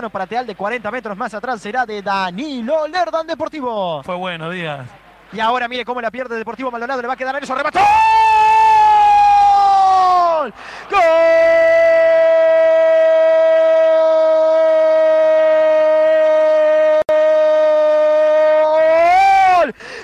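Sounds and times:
commentator shouting goal: 7.4 - 19.7.

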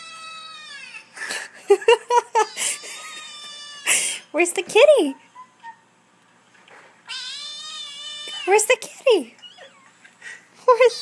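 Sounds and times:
kitten meowing through speakers: 7.1 - 8.5.

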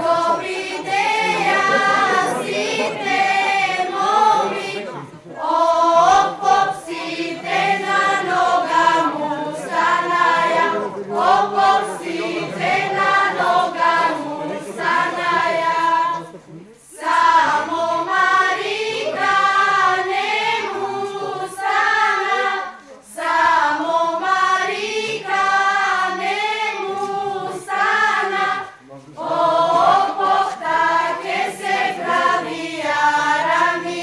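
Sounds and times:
group singing folk song: 0.0 - 34.0.

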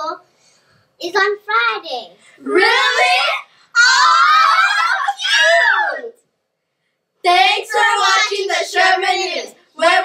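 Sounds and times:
girls squealing: 2.6 - 6.2.

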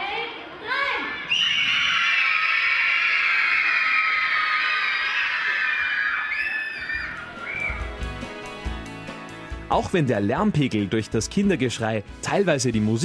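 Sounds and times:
children screaming: 1.2 - 8.0
music with a steady beat: 7.3 - 10.5.

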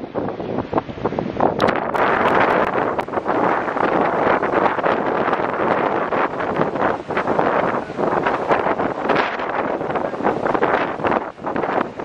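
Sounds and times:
river water rushing over rocks: 0.0 - 12.0
wind buffeting microphone: 0.0 - 12.0.

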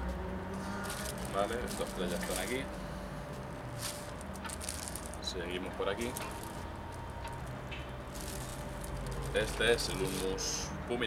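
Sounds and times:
plastic bag crinkling: 0.5 - 10.6.

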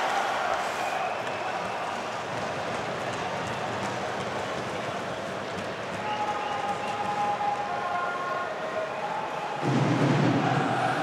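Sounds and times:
arena crowd din: 0.0 - 11.0.

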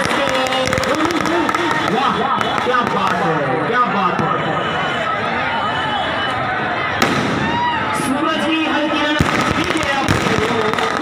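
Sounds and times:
firecrackers going off: 0.0 - 4.4, 6.9 - 11.0
crowd voices: 0.0 - 11.0.

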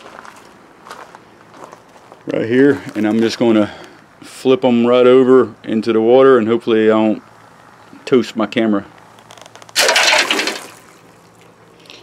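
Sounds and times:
loud splash of water: 9.8 - 11.0.

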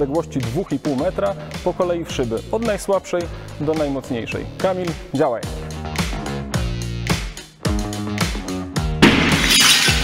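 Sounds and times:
background music with steady beat: 0.0 - 10.0
window glass shattering: 9.0 - 10.0.

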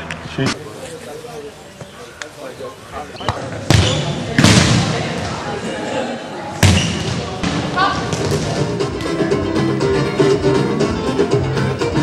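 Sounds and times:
players' voices: 0.2 - 12.0
ball being struck: 6.6 - 8.6.

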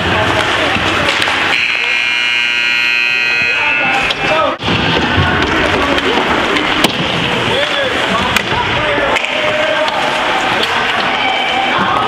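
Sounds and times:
voices in arena: 0.0 - 12.0
scoreboard buzzer: 1.5 - 4.4.

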